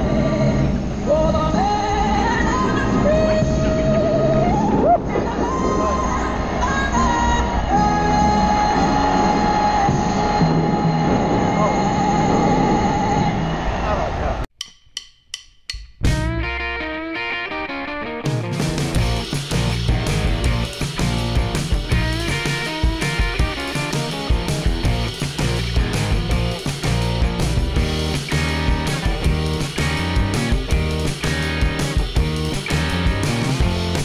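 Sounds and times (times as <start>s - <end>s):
plucked guitar notes: 16.0s - 34.0s
rock band playing: 16.0s - 34.0s.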